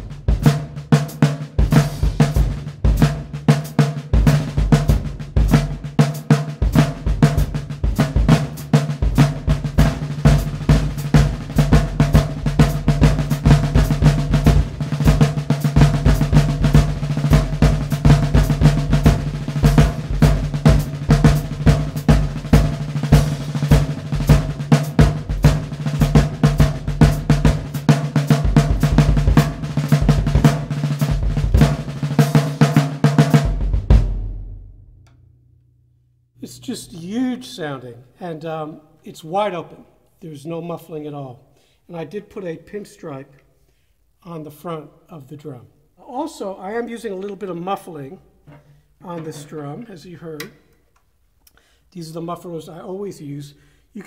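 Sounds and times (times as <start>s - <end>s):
snare drum strokes and rolls: 0.0s - 34.6s
bass drum beats: 0.0s - 35.1s.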